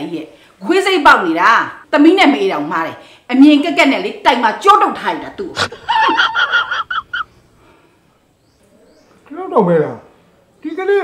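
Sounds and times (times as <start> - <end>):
person chuckling: 5.6 - 7.3.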